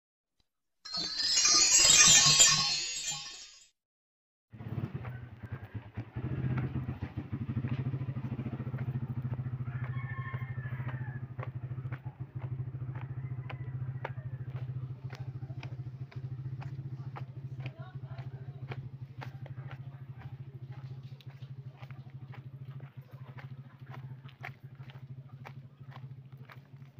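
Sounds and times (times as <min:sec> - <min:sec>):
small engine puttering: 0:04.6 - 0:26.9.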